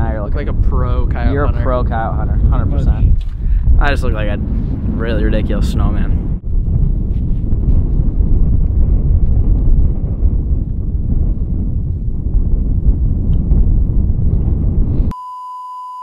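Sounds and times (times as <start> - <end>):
wind buffeting microphone: 0.0 - 15.1.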